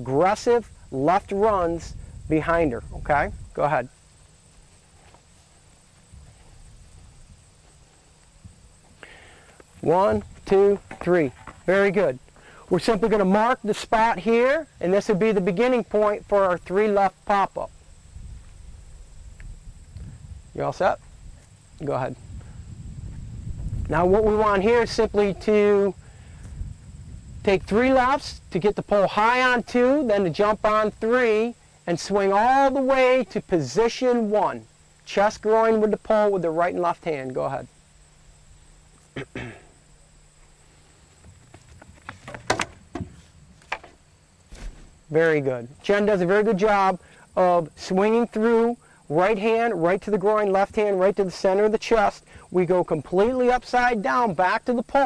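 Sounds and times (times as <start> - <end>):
wind rumble on microphone: 0.5 - 3.8, 6.0 - 7.6, 17.7 - 29.8
quick footsteps on runway: 7.6 - 11.7, 41.1 - 45.0.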